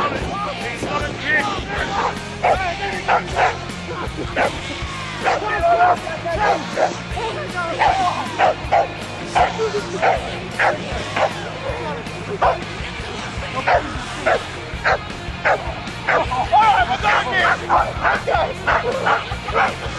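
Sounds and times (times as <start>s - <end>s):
background music: 0.0s - 19.9s
dog barking: 2.0s - 3.6s, 5.2s - 5.4s, 6.4s - 7.0s, 7.8s - 11.4s, 12.4s - 12.6s, 13.7s - 16.3s, 17.4s - 19.9s.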